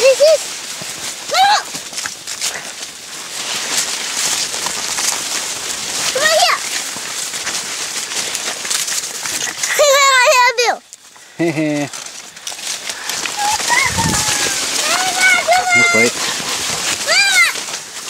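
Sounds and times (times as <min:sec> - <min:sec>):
dry corn leaves rustling: 0:00.0 - 0:18.0
footsteps on dry leaves: 0:00.0 - 0:18.0
child calling: 0:06.1 - 0:06.6, 0:13.3 - 0:16.2, 0:17.0 - 0:17.6.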